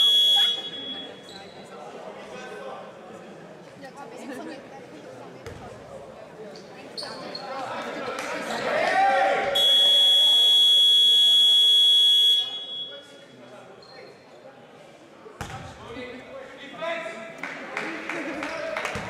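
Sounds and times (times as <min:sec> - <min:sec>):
voices on court: 0:00.0 - 0:19.0
game horn electronic buzz: 0:09.6 - 0:12.6.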